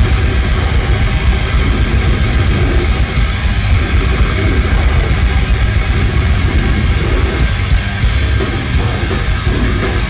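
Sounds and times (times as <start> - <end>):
grindcore band playing: 0.0 - 10.0.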